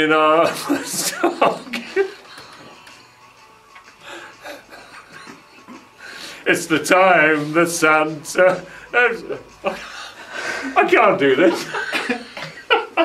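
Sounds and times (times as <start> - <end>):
laughter and chuckling: 0.5 - 2.9, 4.1 - 6.0, 11.4 - 13.0.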